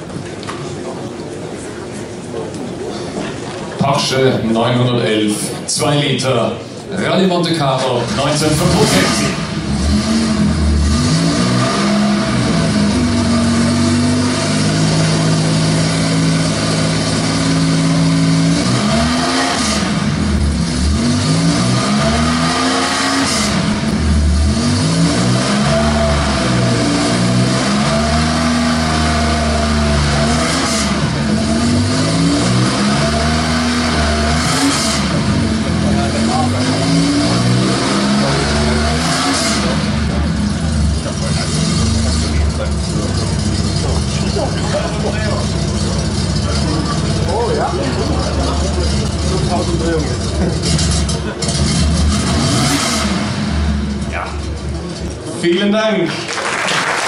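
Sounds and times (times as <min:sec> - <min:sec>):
car engine revving: 0:06.3 - 0:55.5.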